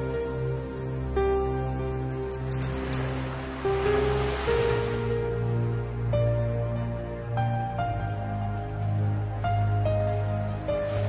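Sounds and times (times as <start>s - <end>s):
slow calm background music: 0.0s - 11.0s
broad wash of noise: 2.1s - 5.4s.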